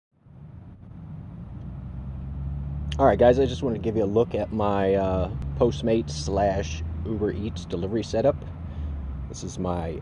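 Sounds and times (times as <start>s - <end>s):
low outdoor rumble: 0.2s - 10.0s.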